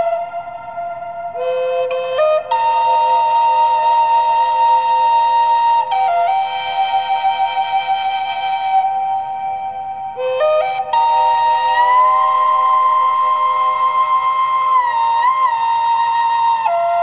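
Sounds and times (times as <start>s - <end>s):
flute playing long notes: 0.0s - 17.0s.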